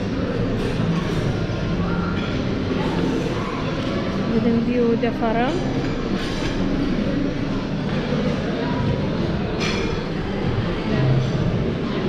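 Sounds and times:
restaurant crowd chatter: 0.0s - 12.0s.

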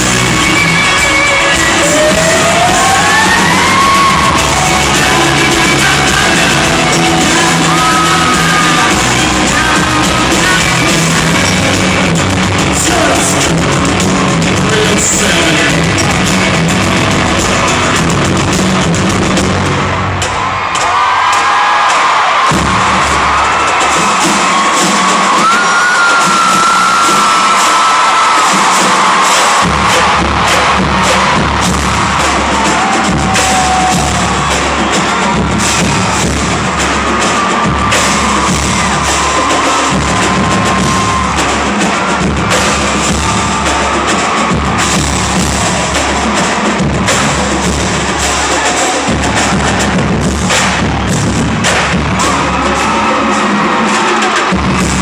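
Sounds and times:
bass drum beats: 0.0s - 21.6s, 22.3s - 55.0s
crowd cheering and whistling: 0.0s - 55.0s
marching drumline cadence: 0.0s - 55.0s.

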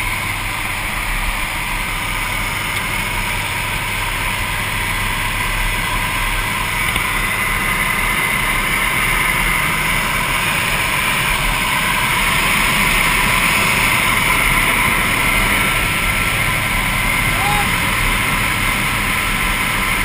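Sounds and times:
airplane engine in cabin: 0.0s - 20.0s.

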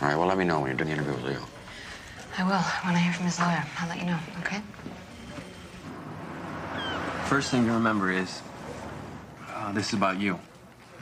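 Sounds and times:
passing cars hissing: 5.8s - 9.5s
high falling squeak: 6.7s - 7.1s.

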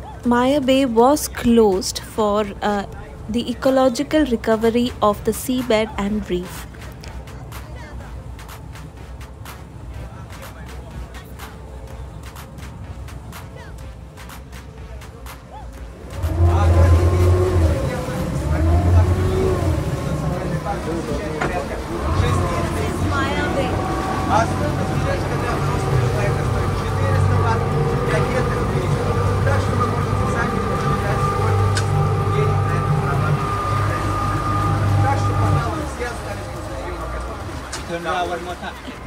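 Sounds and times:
speedboat outboard engines: 0.0s - 39.0s.

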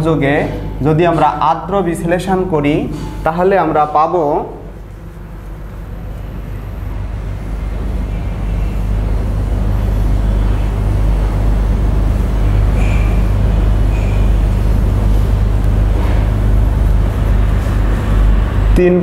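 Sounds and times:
low mechanical rumble: 0.0s - 19.0s.

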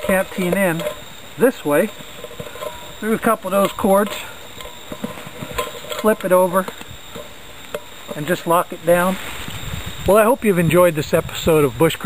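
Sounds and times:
handling clicks and rustles: 0.0s - 9.6s.

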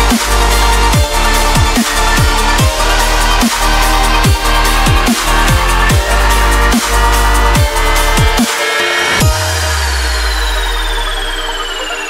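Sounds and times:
deep bass note: 0.0s - 8.4s, 9.2s - 12.0s
high falling synth sweep: 0.0s - 12.0s
sustained synth chords: 0.0s - 12.0s.

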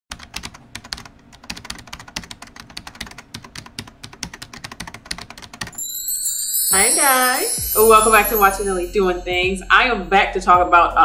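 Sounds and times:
typing on computer keyboard: 0.1s - 5.8s.

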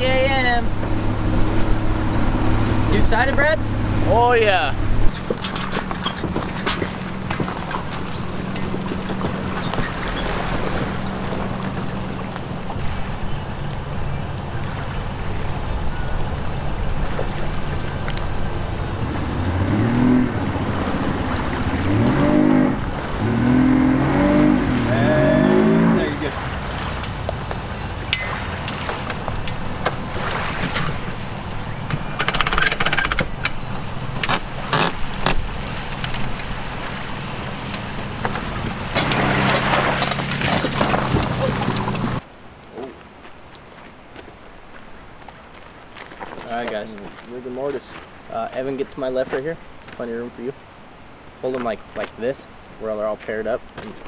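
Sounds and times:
outboard motor revving: 0.0s - 42.2s
clanks and knocks from trailer: 5.1s - 12.0s.

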